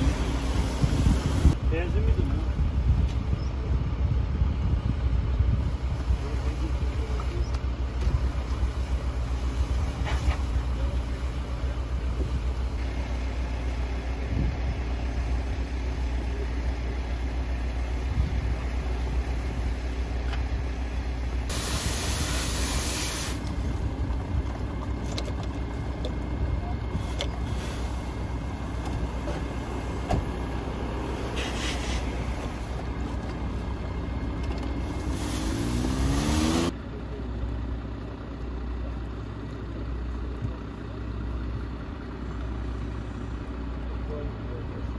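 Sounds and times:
diesel engine idling: 0:00.0 - 0:44.9
loud burst of hiss: 0:21.5 - 0:23.4, 0:35.0 - 0:36.6.

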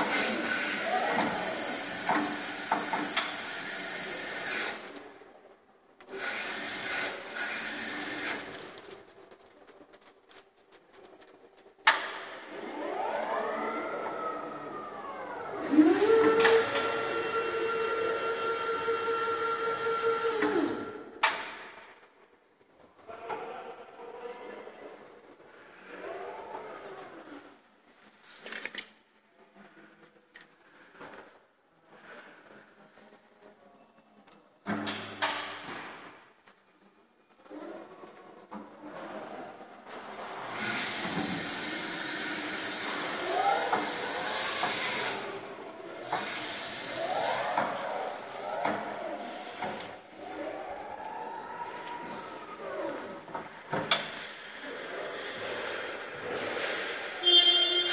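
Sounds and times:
electric order picker whining: 0:12.6 - 0:20.9.

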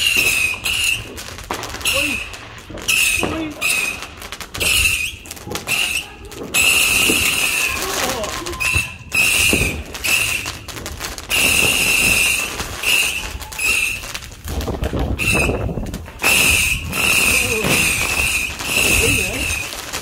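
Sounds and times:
shrill firework whistles: 0:00.0 - 0:10.7, 0:11.3 - 0:14.2, 0:15.0 - 0:19.8
fireworks bangs: 0:00.0 - 0:20.0.

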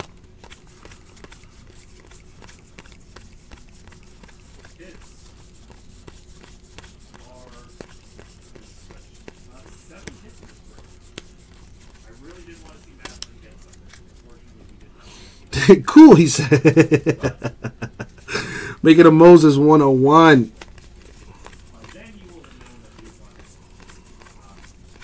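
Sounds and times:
trading cards flicking: 0:00.0 - 0:14.8, 0:20.5 - 0:25.0
faint steady hum: 0:00.0 - 0:25.0.

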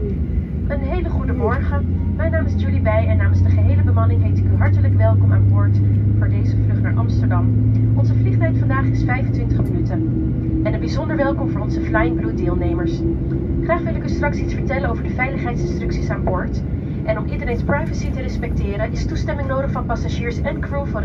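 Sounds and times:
higher whine climbing: 0:00.0 - 0:21.0
loud steady low cabin hum: 0:00.0 - 0:21.0.

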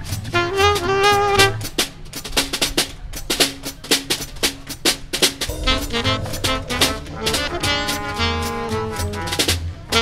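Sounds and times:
snare and cymbal drum break: 0:00.0 - 0:10.0
trombone and saxophone: 0:00.2 - 0:01.8, 0:05.5 - 0:10.0
short low bass notes: 0:05.5 - 0:08.3.

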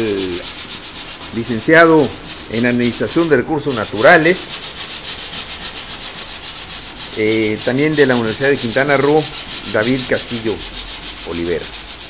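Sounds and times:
pulsing rasping rubbing noise: 0:00.0 - 0:12.0.

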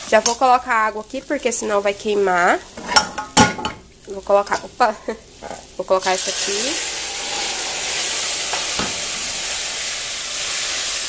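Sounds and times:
rice sizzling in a pot: 0:00.0 - 0:11.0.

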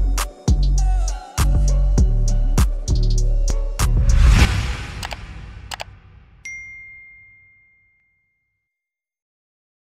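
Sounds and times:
outro music: 0:02.4 - 0:06.5
quick clicks: 0:05.0 - 0:05.9
bright bell ding: 0:06.4 - 0:08.6.

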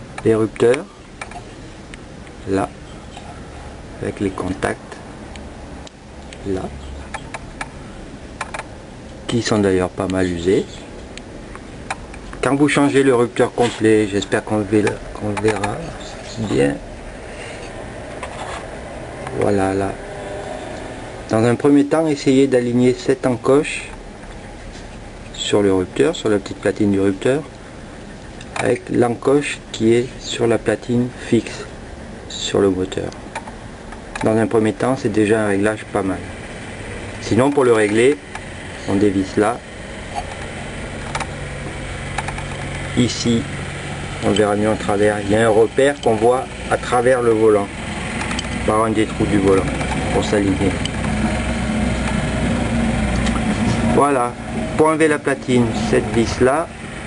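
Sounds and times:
low mechanical hum: 0:00.0 - 0:57.0
steady background hiss: 0:00.0 - 0:57.0.

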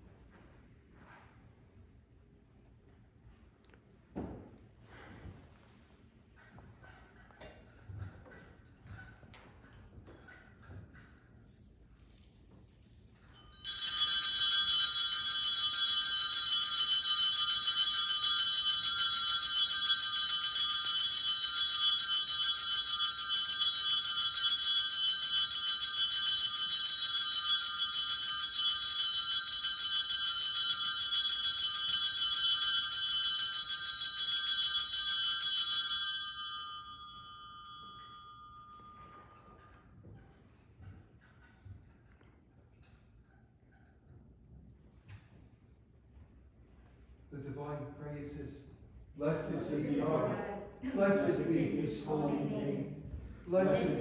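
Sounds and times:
altar bells jangling: 0:06.4 - 0:44.0.

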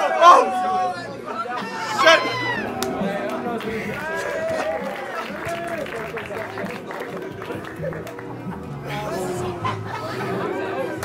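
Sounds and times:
people talking: 0:00.2 - 0:08.0
background music: 0:01.5 - 0:11.0.

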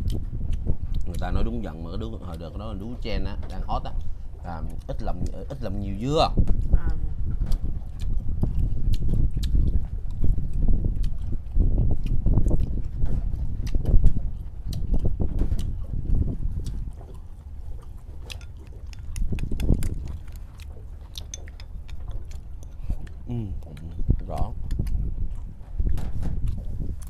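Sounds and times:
low rumble: 0:00.0 - 0:27.0
chewing: 0:03.5 - 0:06.0, 0:06.6 - 0:27.0
chopsticks clicking on plates: 0:18.2 - 0:22.8.

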